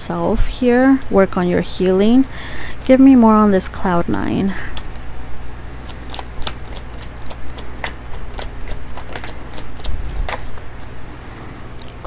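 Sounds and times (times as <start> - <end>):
cards being shuffled: 5.8 - 10.9.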